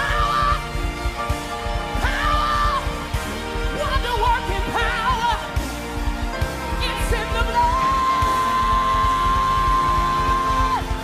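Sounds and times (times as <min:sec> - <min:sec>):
worship song with band: 0:00.0 - 0:11.0.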